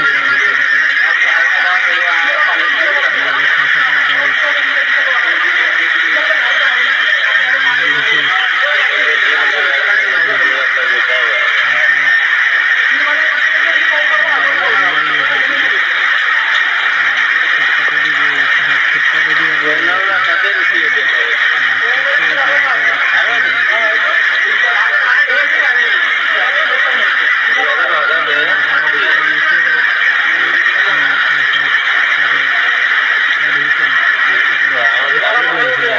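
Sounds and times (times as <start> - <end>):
people talking: 0.0 - 35.9.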